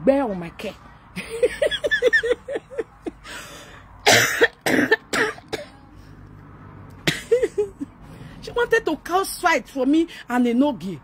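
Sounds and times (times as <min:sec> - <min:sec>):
woman coughing into hand: 0:04.0 - 0:05.8, 0:07.0 - 0:07.7.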